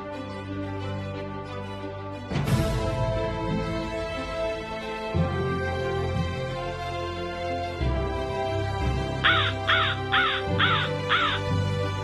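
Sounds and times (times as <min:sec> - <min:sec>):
background music: 0:00.0 - 0:12.0
crow cawing: 0:09.2 - 0:11.8.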